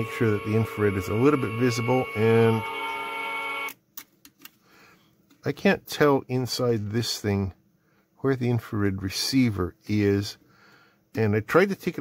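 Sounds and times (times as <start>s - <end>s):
goal light horn chord: 0.0s - 3.6s.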